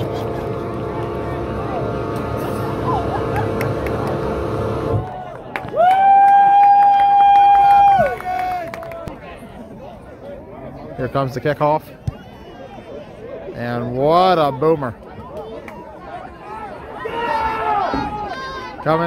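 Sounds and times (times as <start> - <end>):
steady hum: 0.0 - 5.1
crowd noise: 0.0 - 19.0.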